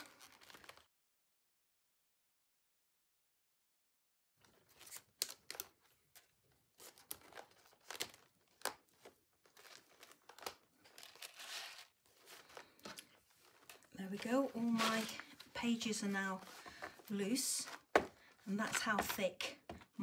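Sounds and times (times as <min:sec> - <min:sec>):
paper rustling: 0:04.4 - 0:19.8.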